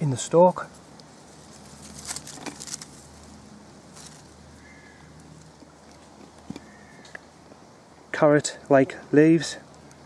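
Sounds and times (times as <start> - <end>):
leaves and stems rustling: 0.0 - 7.2
short crackles of undergrowth: 0.7 - 7.3.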